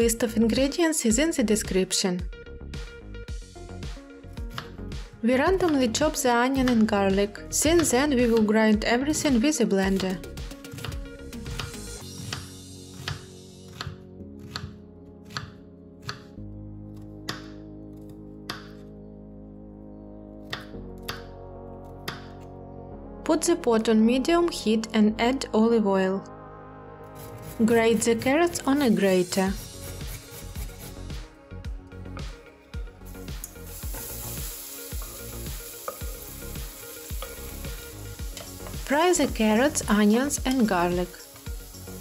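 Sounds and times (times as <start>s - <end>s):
background music with chords: 0.0s - 42.0s
knife chopping on wooden board: 4.5s - 4.8s, 10.0s - 16.3s
vegetables sizzling in oil: 33.1s - 42.0s.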